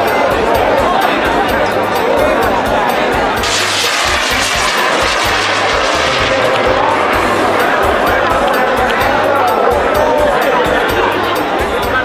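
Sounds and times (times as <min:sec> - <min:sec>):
rocket launching with rushing hiss: 0:03.4 - 0:08.4.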